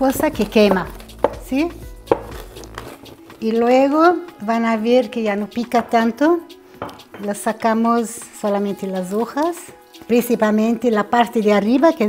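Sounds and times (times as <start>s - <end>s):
rolling pin knocking on wooden board: 2.1s - 2.9s.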